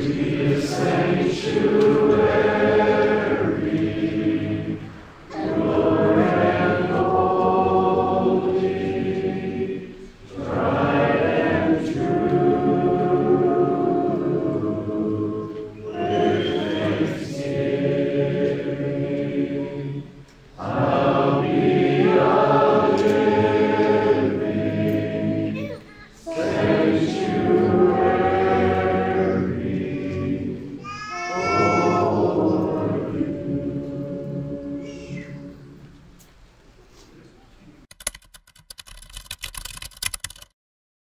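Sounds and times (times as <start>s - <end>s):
congregation singing a hymn: 0.0s - 36.2s
run of small clicks and knocks: 37.9s - 40.5s.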